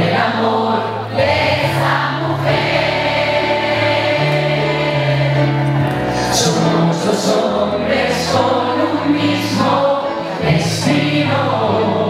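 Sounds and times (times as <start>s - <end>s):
backing track: 0.0s - 12.0s
crowd singing along: 0.0s - 12.0s
man singing pop ballad: 6.2s - 12.0s.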